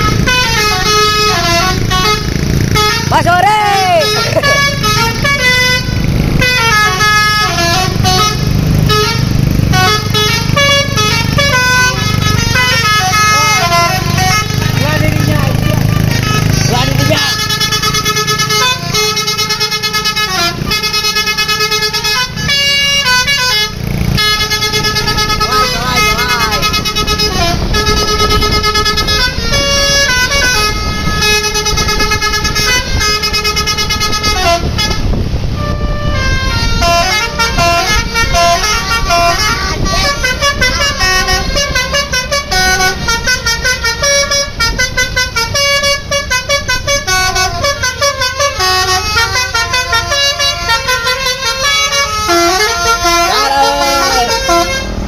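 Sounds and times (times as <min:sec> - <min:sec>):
bus engine: 0:00.0 - 0:55.0
multi-tone musical bus horns: 0:00.0 - 0:55.0.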